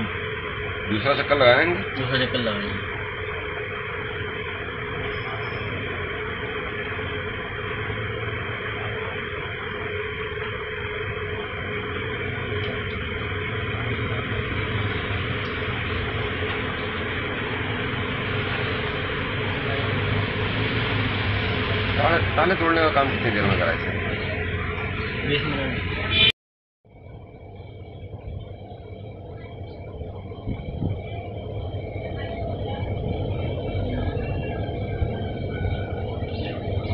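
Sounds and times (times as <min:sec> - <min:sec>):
low even hum: 0:00.0 - 0:26.3, 0:26.9 - 0:36.9.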